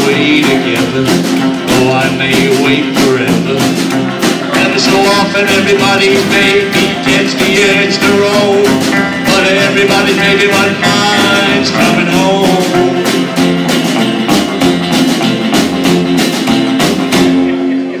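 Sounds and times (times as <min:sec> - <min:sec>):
acoustic rhythm guitar: 0:00.0 - 0:18.0
drums: 0:00.0 - 0:18.0
electric guitar: 0:00.0 - 0:18.0
upright bass: 0:00.0 - 0:18.0.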